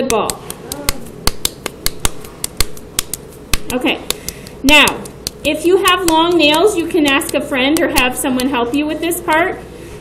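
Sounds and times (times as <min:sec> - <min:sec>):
hands slapping soft clay: 0:00.0 - 0:08.6.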